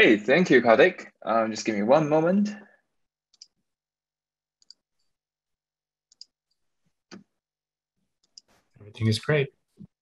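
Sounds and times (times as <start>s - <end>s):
computer mouse clicks: 3.3s - 3.6s, 4.6s - 5.1s, 6.1s - 7.3s, 8.2s - 8.6s.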